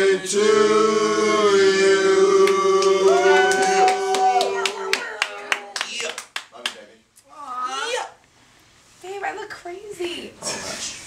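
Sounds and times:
people clapping: 0:02.4 - 0:06.9.

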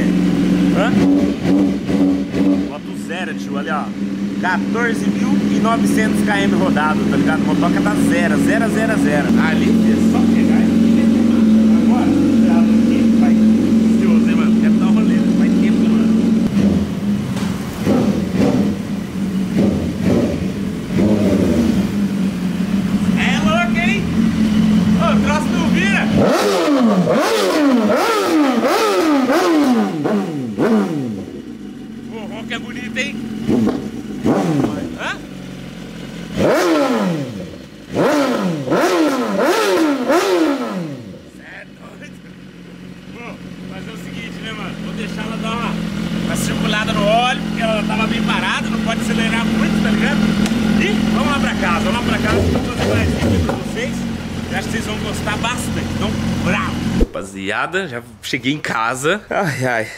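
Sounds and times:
motorcycle engine idling and revving: 0:00.0 - 0:58.0.

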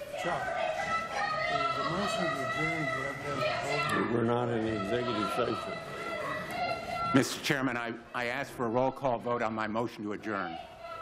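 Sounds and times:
voices shouting and talking: 0:00.0 - 0:11.0.

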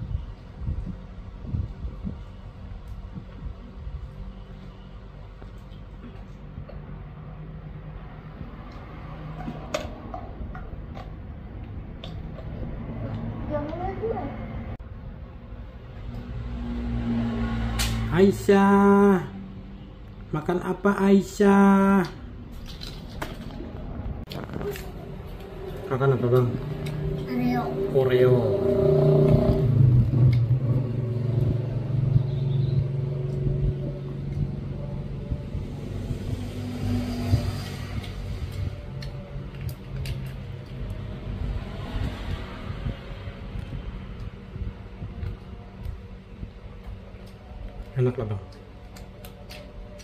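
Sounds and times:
low engine-like rumble: 0:22.2 - 0:50.0.

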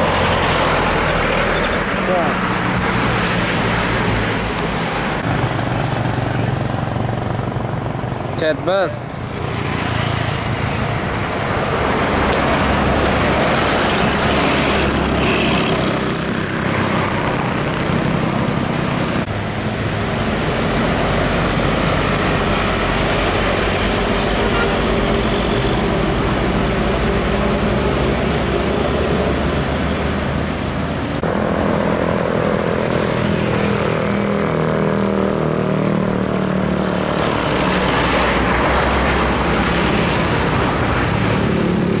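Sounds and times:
diesel coach engines passing: 0:00.0 - 0:42.0.

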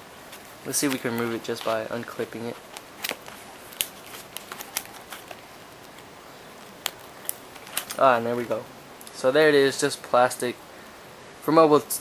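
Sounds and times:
plastic packaging crinkling: 0:00.3 - 0:08.2.

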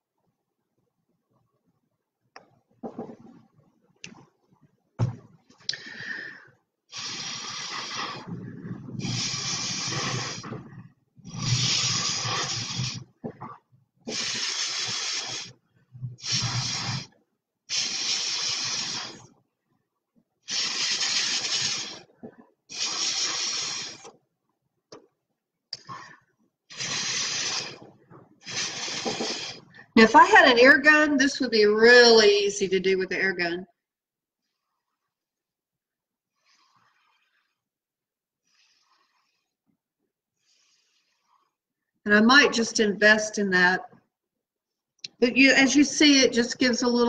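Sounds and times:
breath puffs through a straw: 0:05.7 - 0:13.3, 0:14.0 - 0:19.4, 0:20.4 - 0:24.2, 0:25.8 - 0:30.0, 0:36.3 - 0:37.7, 0:38.4 - 0:39.7, 0:40.4 - 0:41.6.

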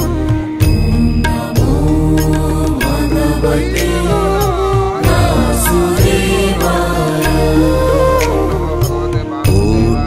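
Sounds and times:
chanted mantra singing: 0:00.0 - 0:10.0
sharp percussive strokes: 0:00.0 - 0:10.0
steady low drone: 0:00.0 - 0:10.0.

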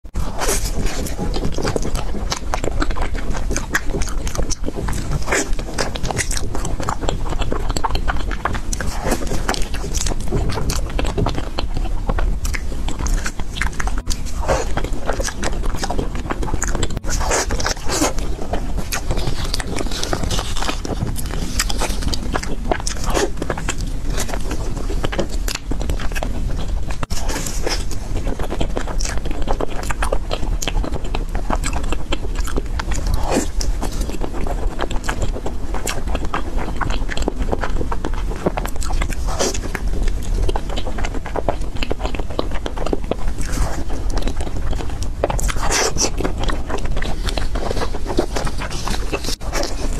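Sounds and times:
chewing soft food: 0:00.1 - 0:49.9
low steady rumble: 0:00.1 - 0:49.9.

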